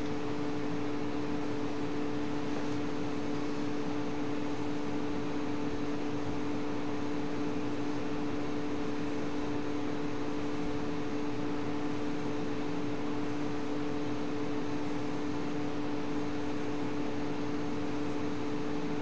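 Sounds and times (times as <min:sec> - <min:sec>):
low two-tone hum: 0:00.0 - 0:19.0.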